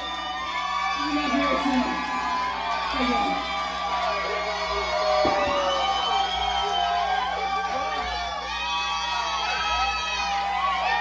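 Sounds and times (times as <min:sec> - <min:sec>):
crowd cheering and whooping: 0:00.0 - 0:11.0.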